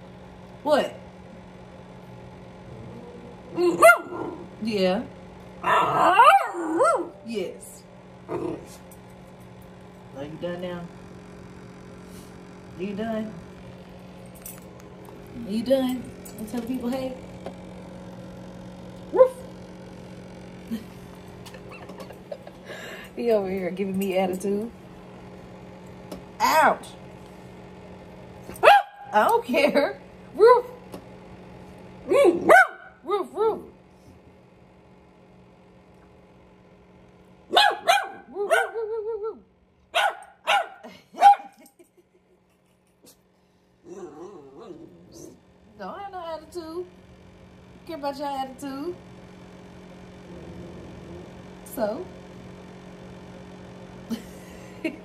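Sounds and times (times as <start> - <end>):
small dog barking: 3.6 - 4.5, 5.6 - 7.2, 19.1 - 19.5, 28.6 - 29.2, 32.0 - 33.7, 37.5 - 38.8, 39.9 - 41.6
dog whining: 5.6 - 7.2, 43.8 - 45.4
dog grunt: 8.3 - 8.8, 43.8 - 45.4, 50.2 - 51.4.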